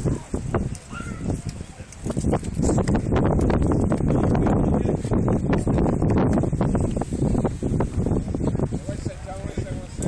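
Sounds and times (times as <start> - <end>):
microphone crackles: 0.0 - 9.1
wind buffeting microphone: 0.0 - 10.0.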